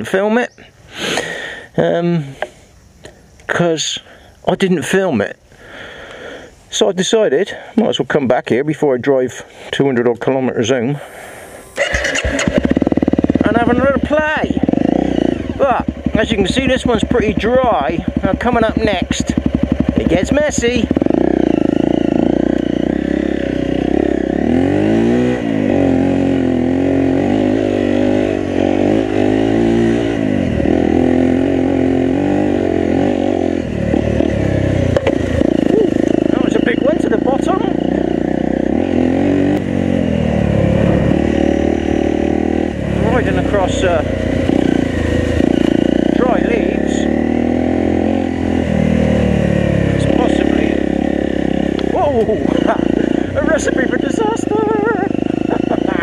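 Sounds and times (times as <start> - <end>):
motorcycle engine revving: 11.0 - 56.0
bike knocks and rattles: 15.8 - 21.4.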